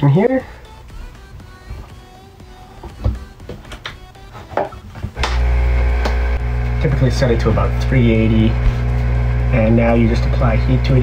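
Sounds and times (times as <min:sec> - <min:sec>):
heat gun blower hum: 0:05.1 - 0:11.0.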